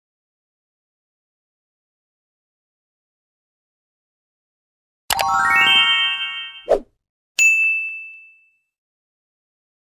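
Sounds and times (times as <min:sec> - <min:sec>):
notification bell ding: 0:07.4 - 0:08.7.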